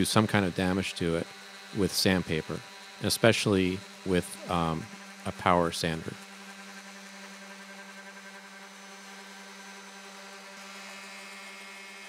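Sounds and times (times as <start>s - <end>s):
orbital sander on wood: 0.0s - 12.0s.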